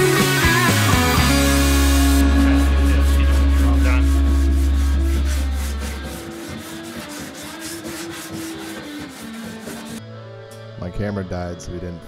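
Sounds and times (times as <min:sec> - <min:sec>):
background music: 0:00.0 - 0:12.0
sandpaper scratching wood: 0:02.2 - 0:10.0.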